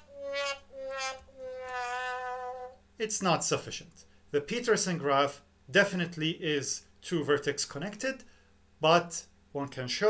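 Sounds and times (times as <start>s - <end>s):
sad trombone sound effect: 0.0s - 2.7s.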